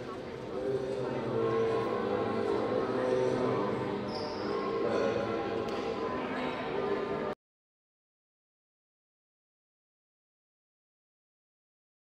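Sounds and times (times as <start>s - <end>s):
many overlapping voices: 0.0s - 7.4s.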